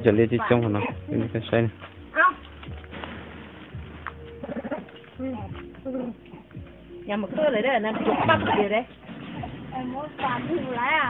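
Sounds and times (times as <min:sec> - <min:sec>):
dove cooing: 0:04.3 - 0:09.7.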